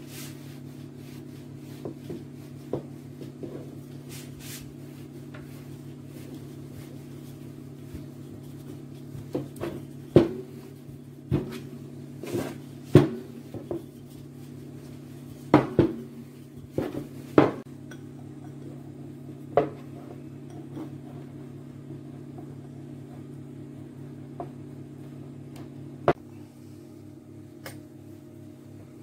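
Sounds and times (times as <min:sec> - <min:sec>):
dough rolled on worktop: 0:00.0 - 0:17.7, 0:18.6 - 0:26.2.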